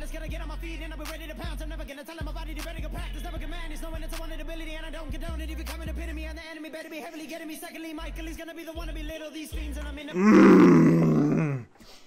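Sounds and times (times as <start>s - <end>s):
man groaning: 10.2s - 11.7s.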